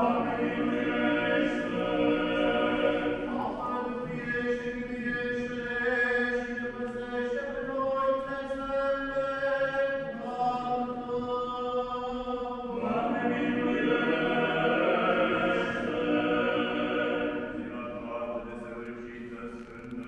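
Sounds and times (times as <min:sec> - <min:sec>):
church chant: 0:00.0 - 0:20.0.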